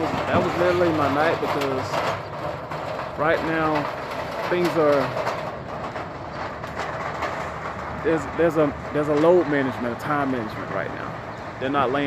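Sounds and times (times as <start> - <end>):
low even rumble: 0.0 - 12.0.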